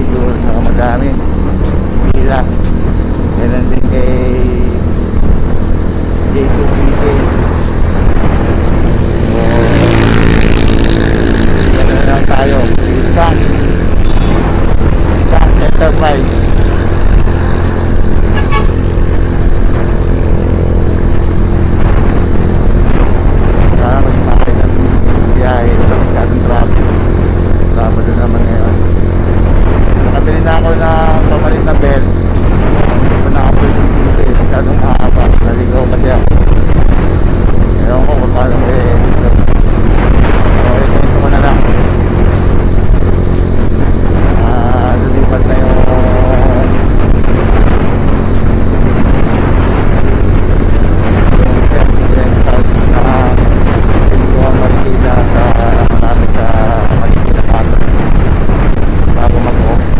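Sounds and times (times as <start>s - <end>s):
person speaking: 0.0s - 23.0s, 23.6s - 29.0s, 30.1s - 36.4s, 37.6s - 42.2s, 43.4s - 47.0s, 50.7s - 58.0s, 59.0s - 59.9s
scooter engine running: 0.0s - 24.0s
background music: 0.0s - 59.9s
wind and road noise: 0.0s - 59.9s.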